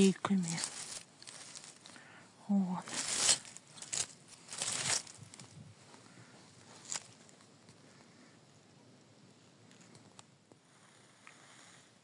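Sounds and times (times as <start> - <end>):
pine needles and leaves rustling: 0.0 - 8.4.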